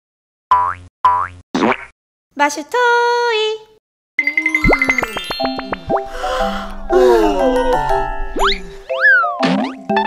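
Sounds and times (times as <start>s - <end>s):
cartoon sound effects: 4.2s - 6.1s, 7.0s - 10.0s.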